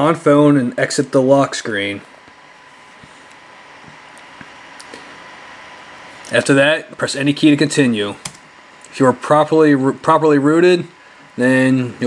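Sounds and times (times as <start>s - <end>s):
faint high whine: 0.0s - 12.0s
steady low hiss: 0.0s - 12.0s.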